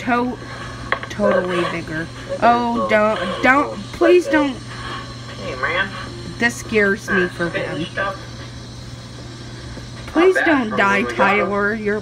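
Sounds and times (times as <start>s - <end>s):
person speaking: 1.1s - 4.7s, 10.2s - 12.0s.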